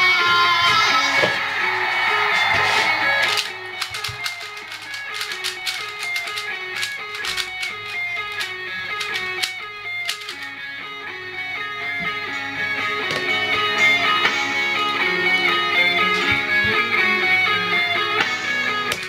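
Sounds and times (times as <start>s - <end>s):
guitar music through speakers: 0.0s - 19.0s
sharp clicks: 2.6s - 10.5s.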